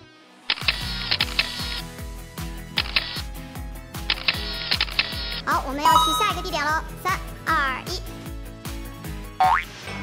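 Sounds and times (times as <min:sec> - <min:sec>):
upbeat background music: 0:05.6 - 0:08.5.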